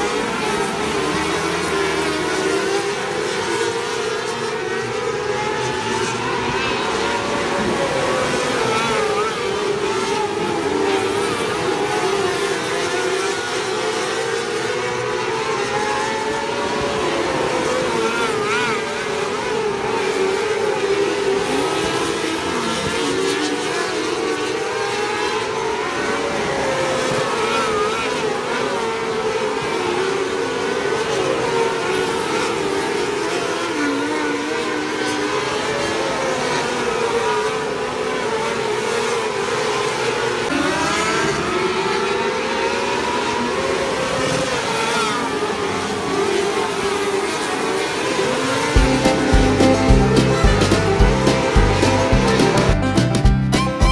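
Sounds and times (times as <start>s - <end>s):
race car engines at high revs: 0.0s - 52.6s
car engine accelerating: 40.4s - 53.2s.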